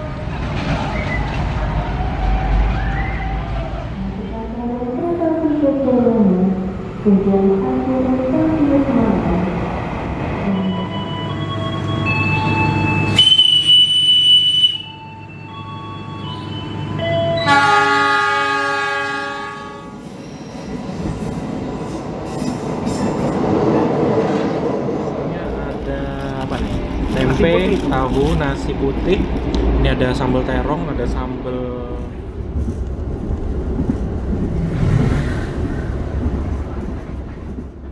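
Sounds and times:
train rumbling: 0:00.0 - 0:37.9
locomotive horn blast: 0:17.4 - 0:20.0.

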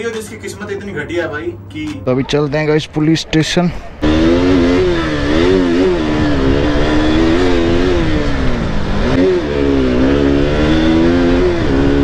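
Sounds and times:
motorcycle engine revving: 0:04.0 - 0:12.0.

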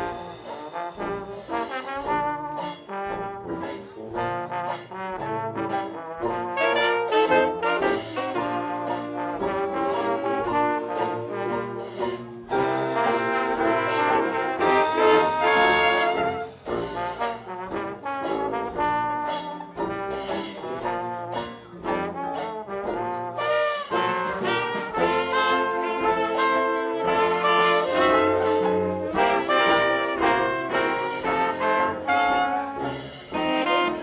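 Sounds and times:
big band jazz playing: 0:00.0 - 0:34.0.

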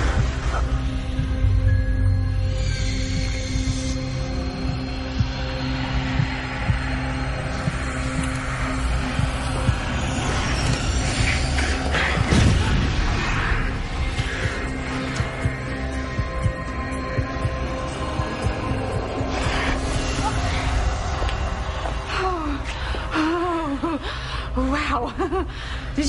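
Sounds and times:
low drones and sustained tones: 0:00.0 - 0:24.7.

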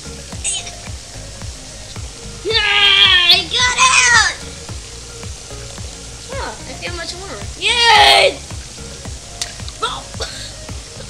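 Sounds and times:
faint background music beat: 0:00.0 - 0:11.0
water spraying from sprayer: 0:00.0 - 0:11.0.

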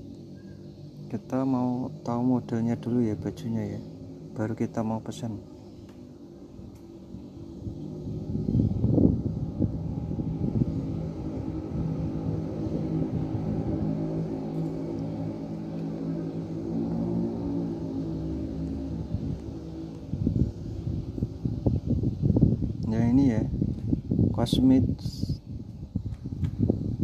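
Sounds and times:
engine running low hum: 0:00.0 - 0:27.0.

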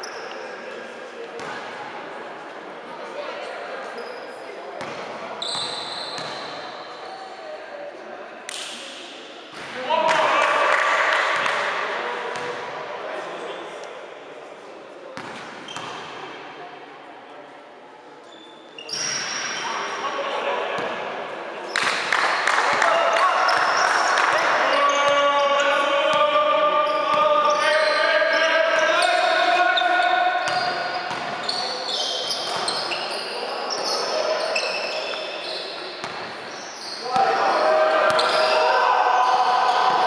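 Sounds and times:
sneaker squeaks: 0:00.0 - 0:00.6, 0:03.8 - 0:07.4, 0:15.2 - 0:16.1, 0:18.2 - 0:20.2, 0:26.8 - 0:38.8
players calling out: 0:22.5 - 0:35.7, 0:36.5 - 0:40.0.

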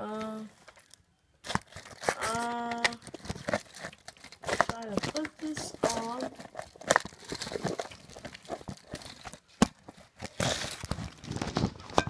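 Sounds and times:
fabric rustling and crinkling: 0:00.4 - 0:12.0.

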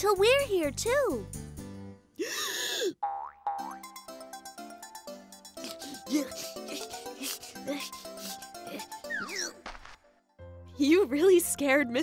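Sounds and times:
light background music: 0:00.0 - 0:02.2, 0:03.7 - 0:12.0
cartoon boing: 0:03.0 - 0:03.9.

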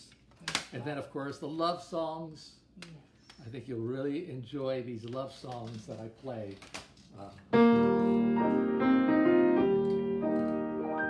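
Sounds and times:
soft grand piano melody: 0:07.5 - 0:11.0.

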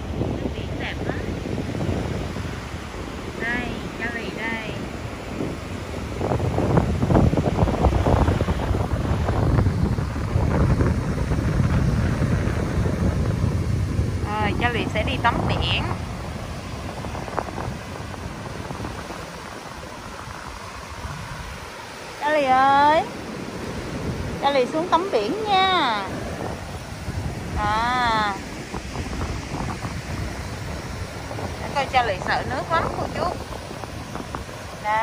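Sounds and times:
strong wind buffeting microphone: 0:00.0 - 0:35.0
surf washing: 0:00.0 - 0:35.0.

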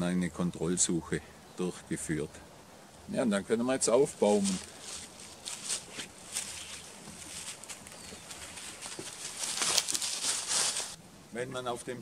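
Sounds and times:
boots scuffing on forest floor: 0:04.2 - 0:11.0
clothing and backpack rustling: 0:04.2 - 0:11.0
steps on wooden ladder rungs: 0:04.2 - 0:11.0.

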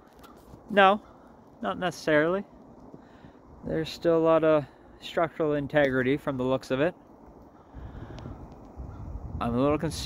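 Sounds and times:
wind rumbling on microphone: 0:07.1 - 0:10.0.

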